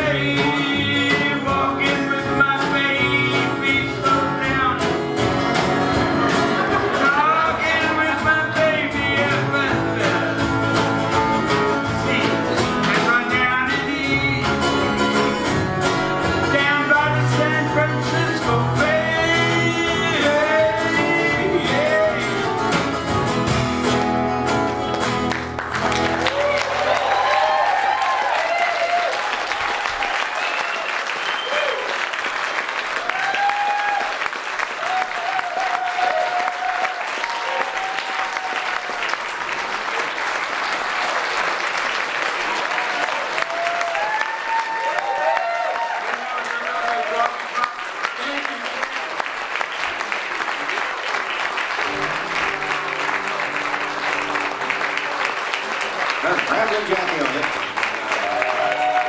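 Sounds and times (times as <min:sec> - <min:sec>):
audience applauding: 0:01.2 - 0:23.0, 0:24.6 - 0:59.0
whoops and shouts: 0:26.2 - 0:31.9, 0:33.0 - 0:34.2, 0:34.8 - 0:38.9, 0:42.8 - 0:46.3, 0:58.2 - 0:59.0.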